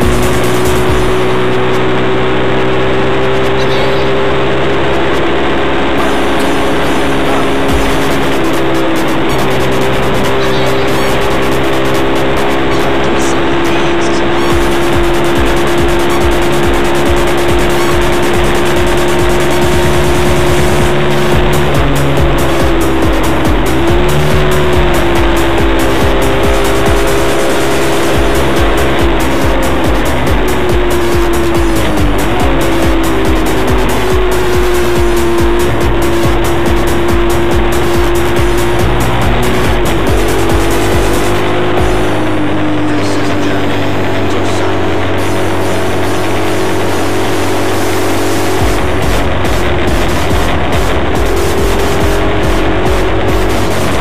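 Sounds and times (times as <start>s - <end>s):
moped engine whine: 0.0s - 54.0s.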